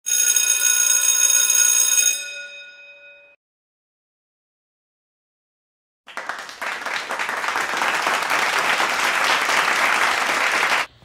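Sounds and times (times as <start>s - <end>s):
bright ringing chime: 1.5s - 3.4s.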